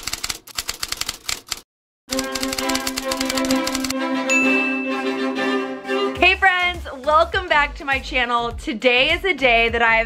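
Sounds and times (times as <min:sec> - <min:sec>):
typewriter keys clacking: 0:00.0 - 0:01.6, 0:02.2 - 0:03.9
music with sustained strings: 0:02.1 - 0:06.4.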